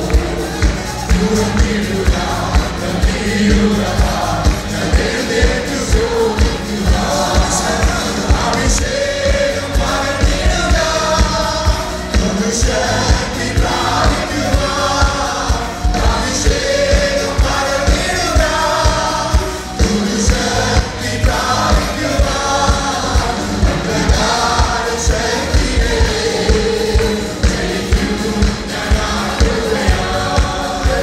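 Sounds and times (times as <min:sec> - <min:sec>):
voices singing: 0:00.0 - 0:31.0.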